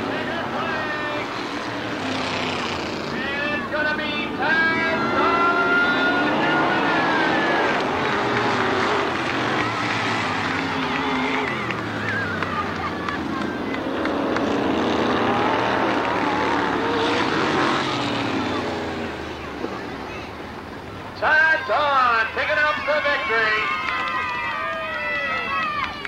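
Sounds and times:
race car engines revving: 0.0s - 26.0s.

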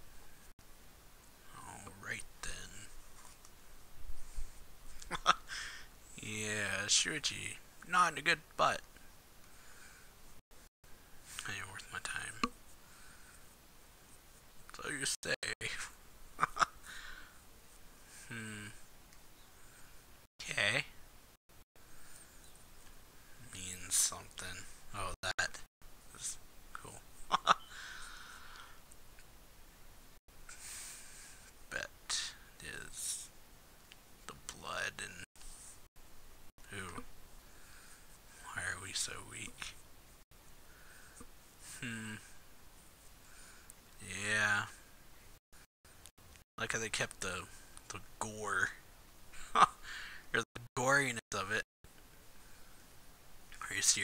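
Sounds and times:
low background hiss: 0.0s - 54.0s
person speaking softly: 1.4s - 3.0s, 11.3s - 12.6s, 18.2s - 18.9s, 23.4s - 27.0s, 34.3s - 35.3s, 36.6s - 37.1s, 38.4s - 39.8s, 41.7s - 42.3s, 46.6s - 48.8s.

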